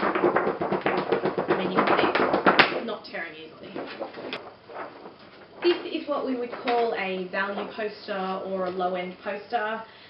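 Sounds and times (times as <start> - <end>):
thick paper crackling: 0.0 - 7.6.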